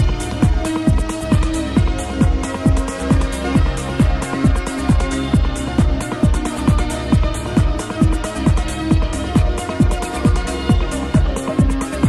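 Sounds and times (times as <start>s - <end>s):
electronic kick drum: 0.0s - 12.0s
hi-hats: 0.0s - 12.0s.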